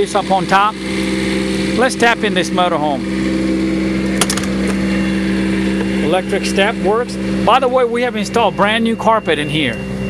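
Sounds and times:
steady mechanical hum: 0.0 - 10.0.

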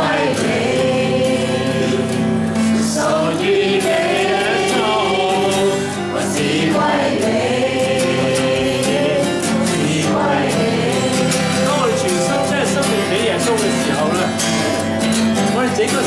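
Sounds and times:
man singing: 0.0 - 14.8
group of voices singing: 0.0 - 15.0
acoustic guitar strumming: 0.0 - 16.0.

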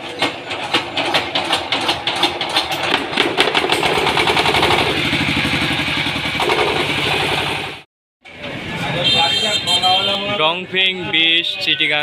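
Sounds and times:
diesel engine starting and knocking: 0.0 - 8.6.

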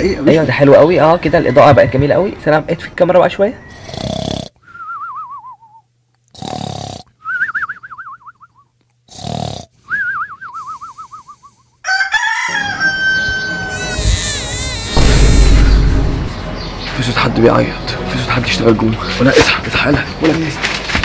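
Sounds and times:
comic snoring with falling whistle: 3.7 - 5.8, 9.1 - 11.6
rooster crowing: 11.8 - 14.0.

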